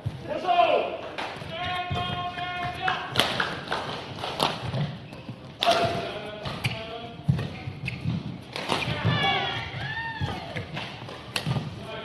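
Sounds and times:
footfalls on court mat: 0:01.2 - 0:12.0
racket striking shuttlecock: 0:05.6 - 0:09.1, 0:10.3 - 0:11.7
shoe squeaks: 0:06.3 - 0:11.6.

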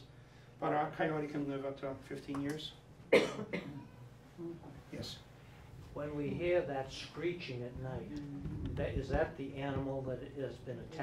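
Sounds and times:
person coughing: 0:03.1 - 0:04.0.

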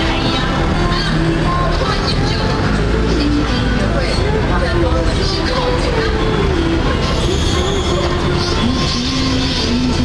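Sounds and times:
people's voices: 0:00.0 - 0:10.0
road traffic noise: 0:00.0 - 0:10.0.

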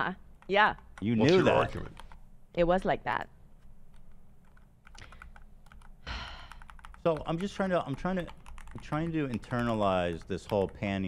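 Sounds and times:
low steady hum: 0:00.0 - 0:11.0
typing on a keyboard: 0:03.9 - 0:11.0.

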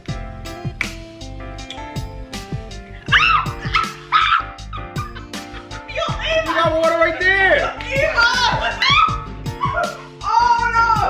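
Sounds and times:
background music: 0:00.0 - 0:11.0
woman yelping: 0:03.1 - 0:11.0.

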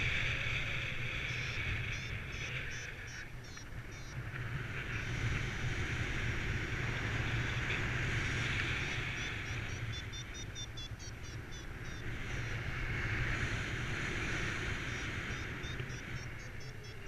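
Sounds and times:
wind rushing over microphone: 0:00.0 - 0:17.0
variometer high beeps: 0:00.9 - 0:04.2, 0:08.6 - 0:12.8, 0:14.8 - 0:17.0.

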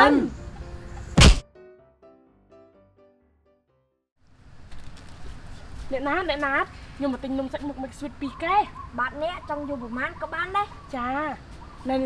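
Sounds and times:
faint background music: 0:00.0 - 0:01.4
short loud thunk: 0:01.2 - 0:01.4.

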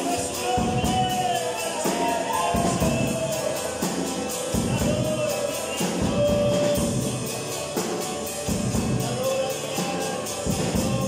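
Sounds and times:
person singing: 0:00.0 - 0:08.0, 0:08.6 - 0:11.0
acoustic guitar strumming: 0:00.0 - 0:11.0
shaker beat: 0:00.0 - 0:11.0.

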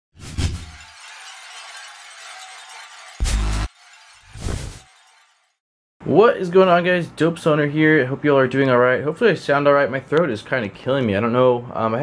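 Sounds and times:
falling glass shards tinkling: 0:00.5 - 0:05.6
glass shattering with low boom: 0:00.5 - 0:05.6.

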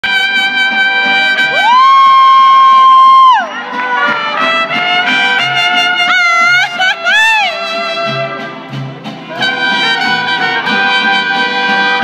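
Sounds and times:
strummed guitars: 0:00.0 - 0:12.0
violins playing: 0:03.4 - 0:12.0.

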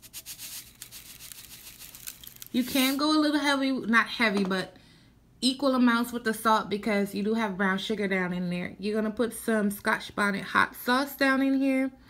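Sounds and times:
salt pouring into foil pan: 0:00.0 - 0:03.0.

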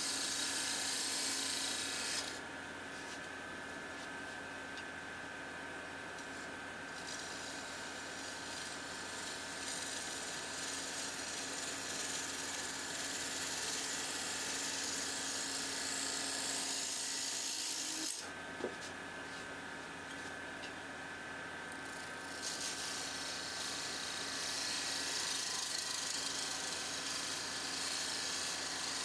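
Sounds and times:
gouge cutting wood with hiss: 0:00.0 - 0:02.4, 0:07.0 - 0:18.2, 0:22.2 - 0:29.0
wood lathe humming: 0:07.4 - 0:18.2, 0:22.4 - 0:29.0.

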